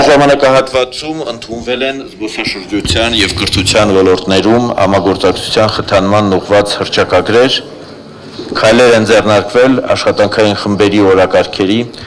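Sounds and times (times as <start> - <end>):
man speaking into a microphone: 0.0 - 7.7, 8.5 - 12.0.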